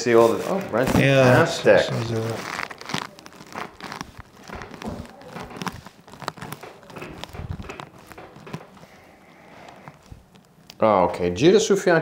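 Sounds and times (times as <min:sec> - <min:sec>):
clothing and table cover rustling: 0:00.0 - 0:10.9
small clicks and creaks: 0:02.0 - 0:10.9.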